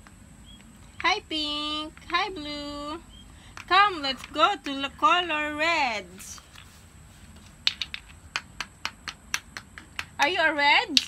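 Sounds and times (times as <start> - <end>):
plastic toy blocks clicking: 7.7 - 8.2.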